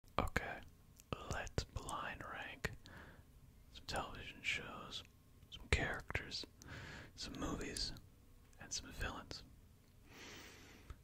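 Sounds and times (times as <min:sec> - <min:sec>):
man whispering: 0:00.2 - 0:02.9, 0:03.7 - 0:09.5.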